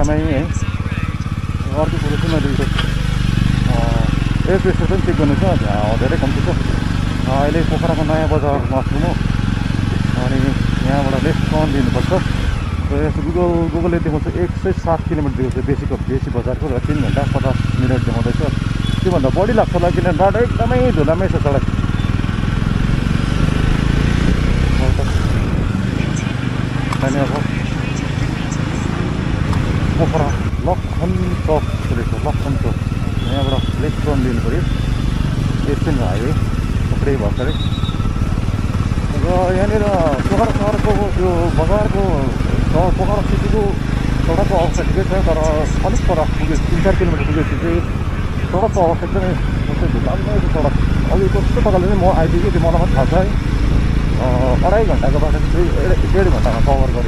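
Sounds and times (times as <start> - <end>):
person talking: 0.0 - 2.8, 3.6 - 6.6, 7.2 - 9.2, 24.7 - 29.1, 30.0 - 34.6, 39.1 - 53.4, 54.2 - 57.0
motorcycle engine running: 0.0 - 57.0.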